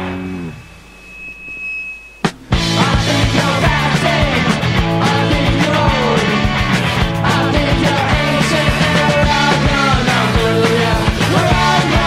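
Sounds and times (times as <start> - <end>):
punk rock chord ringing: 0.0 - 12.0
thin high steady tone: 0.3 - 2.6.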